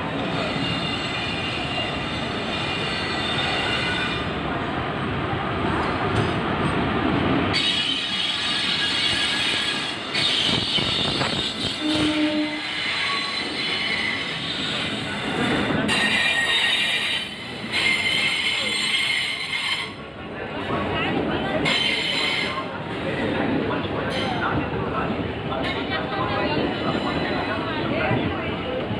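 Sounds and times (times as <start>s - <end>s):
train wheels rumbling on rails: 0.0s - 28.9s
high squeal of wheels and brakes: 0.4s - 4.2s, 7.6s - 20.0s.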